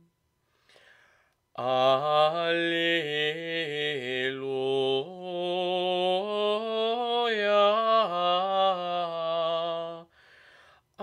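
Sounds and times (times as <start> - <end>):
man singing chant: 1.6 - 10.1.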